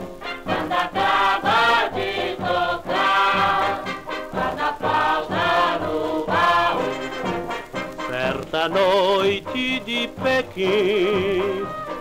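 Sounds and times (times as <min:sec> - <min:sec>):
orchestral samba from a record: 0:00.0 - 0:12.0.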